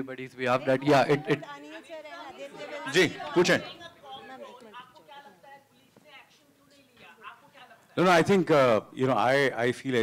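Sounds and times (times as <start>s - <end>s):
voices talking over one another: 0.5s - 5.4s.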